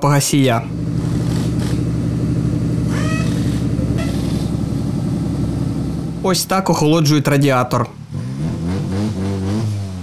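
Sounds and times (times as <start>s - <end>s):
engine idling: 0.6s - 7.4s
high rising squeaks: 2.9s - 4.7s.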